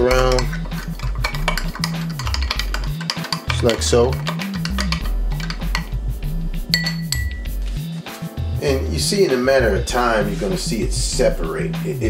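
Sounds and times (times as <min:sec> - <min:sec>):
music with stepping bass line: 0:00.0 - 0:12.0
spoon clinking against glass: 0:00.2 - 0:05.9, 0:06.7 - 0:07.6.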